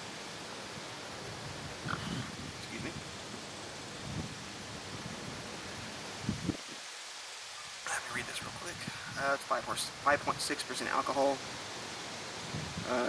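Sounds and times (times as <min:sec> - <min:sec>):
outdoor background hiss: 0:00.0 - 0:13.0
low rumble on microphone: 0:01.2 - 0:03.4, 0:12.4 - 0:13.0.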